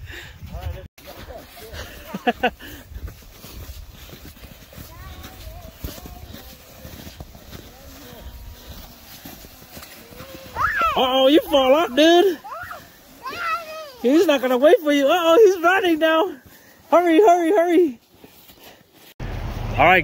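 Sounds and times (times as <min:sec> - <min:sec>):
sleds scraping over snow: 0:00.1 - 0:20.0
boots crunching in snow: 0:01.0 - 0:19.2.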